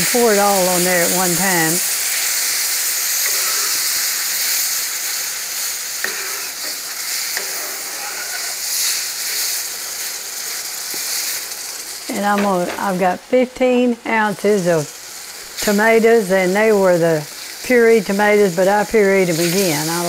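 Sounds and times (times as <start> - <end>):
roux sizzling in a skillet: 0.0 - 20.0.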